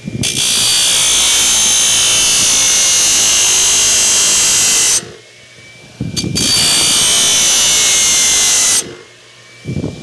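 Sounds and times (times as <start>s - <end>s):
metal grinding on belt grinder: 0.0s - 9.7s
grinder hum and whine: 0.0s - 10.0s.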